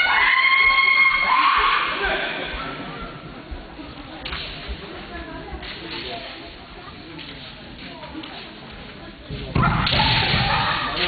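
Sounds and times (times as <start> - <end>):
loud drawn-out shouts: 0.0 - 2.6
low hall murmur: 0.0 - 11.0.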